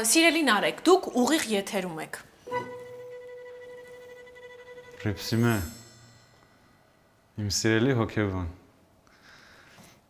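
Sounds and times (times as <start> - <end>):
held musical tone: 2.4 - 7.6.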